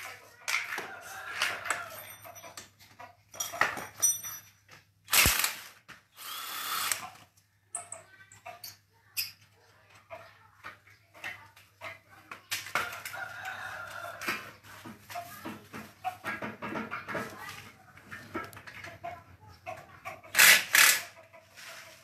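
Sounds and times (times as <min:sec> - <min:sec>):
tools clinking and knocking: 0:00.5 - 0:05.0, 0:07.7 - 0:12.0, 0:12.7 - 0:17.5
handheld drill running: 0:05.1 - 0:07.1, 0:20.3 - 0:21.1.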